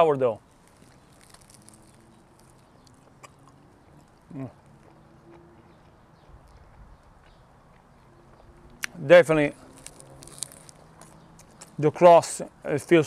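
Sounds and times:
chewing pizza crust: 0:00.4 - 0:11.9.

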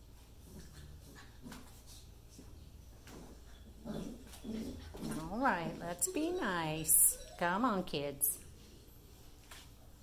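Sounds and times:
puppies play-fighting: 0:00.0 - 0:09.4
puppies growling: 0:03.1 - 0:07.9.

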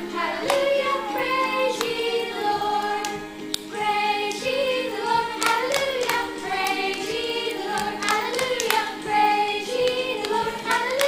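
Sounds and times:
woman and children singing: 0:00.0 - 0:11.0
hand claps: 0:00.4 - 0:00.9, 0:01.7 - 0:02.2, 0:03.0 - 0:03.7, 0:05.4 - 0:11.0.

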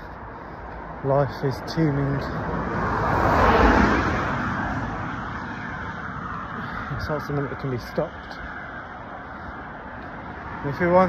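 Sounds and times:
car driving past: 0:02.2 - 0:07.3.

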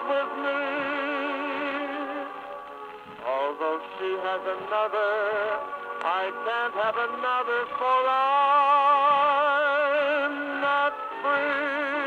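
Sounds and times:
crooner ballad on gramophone: 0:00.0 - 0:12.0.

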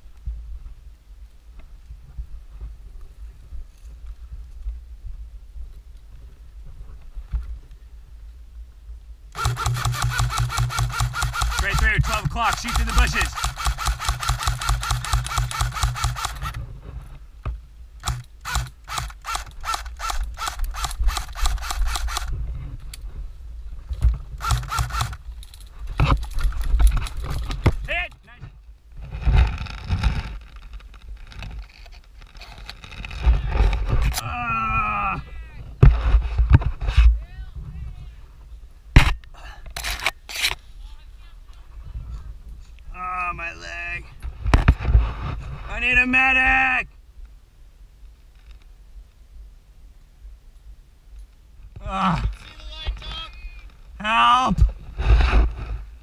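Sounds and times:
airsoft rifle firing: 0:09.4 - 0:16.6, 0:18.0 - 0:22.3, 0:24.4 - 0:25.2.

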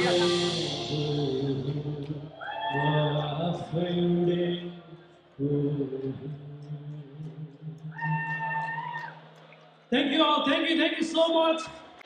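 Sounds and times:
high held note: 0:00.0 - 0:03.1
man singing through pa: 0:00.0 - 0:08.8.

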